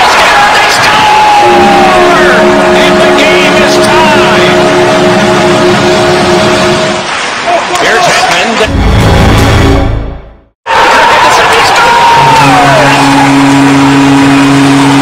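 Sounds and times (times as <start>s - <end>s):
excited voices: 0.0s - 2.5s, 10.7s - 14.0s
goal horn blowing a chord: 1.2s - 7.1s, 12.3s - 15.0s.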